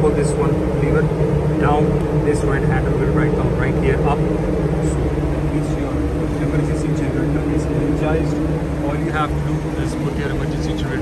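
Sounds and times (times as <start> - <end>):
ship machinery droning: 0.0 - 11.0.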